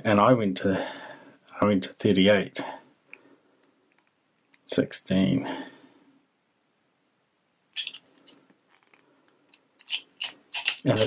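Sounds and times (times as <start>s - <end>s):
padlock clicking and rattling: 7.8s - 10.9s.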